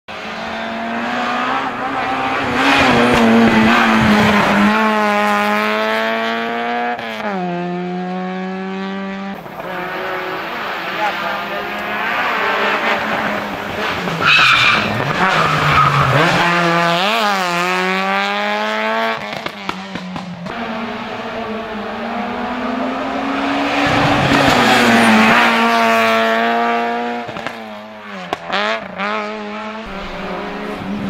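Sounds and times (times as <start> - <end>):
race car engine at high revs: 0.1 - 31.0.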